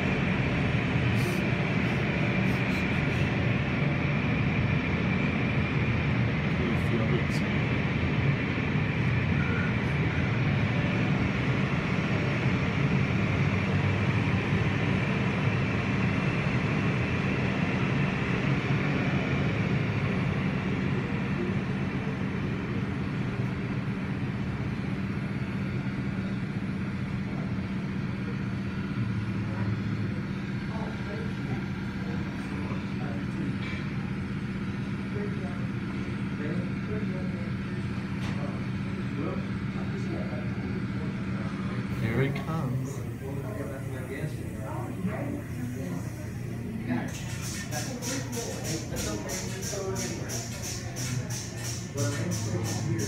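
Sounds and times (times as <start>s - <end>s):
low machine hum: 0.0s - 53.0s.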